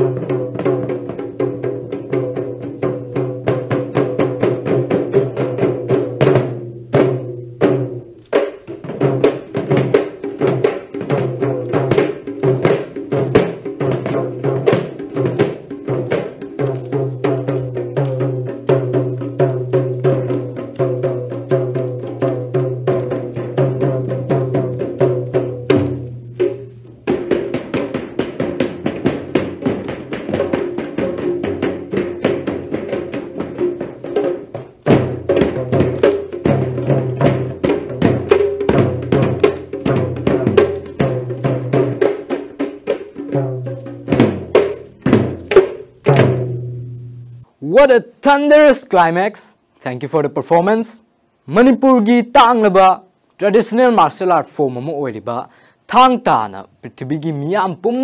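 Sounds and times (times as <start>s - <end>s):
rapid dense drumming: 0.0s - 47.9s
held low tones: 13.1s - 42.0s, 43.3s - 47.8s.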